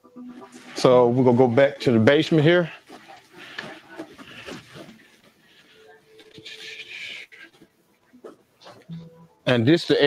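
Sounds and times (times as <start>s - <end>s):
faint muffled voice: 2.6s - 9.0s.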